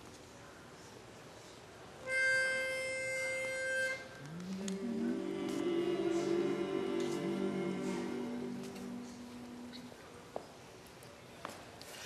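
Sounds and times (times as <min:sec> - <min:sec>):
pitch pipe note: 0:02.1 - 0:09.9.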